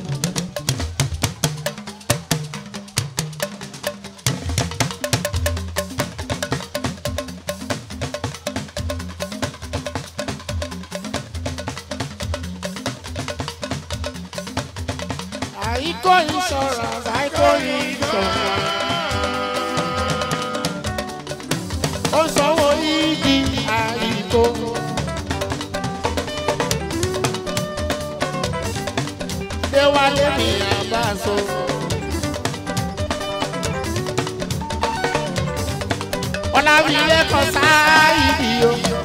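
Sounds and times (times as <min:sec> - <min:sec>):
fast dense percussion: 0:00.0 - 0:39.0.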